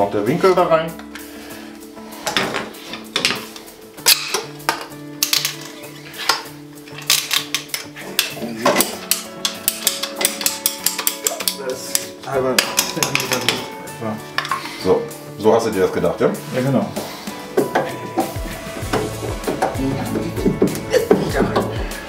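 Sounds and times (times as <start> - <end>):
background music with held tones: 0.0 - 22.0
plastic pipe fittings clicking: 3.0 - 13.7.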